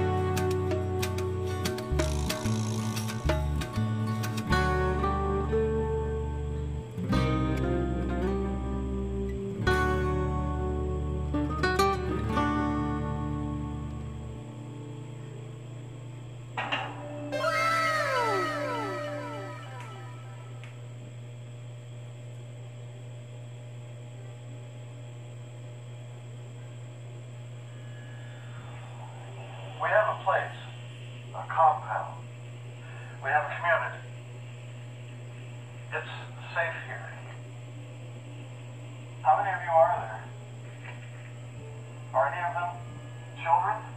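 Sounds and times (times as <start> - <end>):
falling tones: 17.3 - 20.7
film dialogue: 17.4 - 20.7
low hum: 17.4 - 21.2.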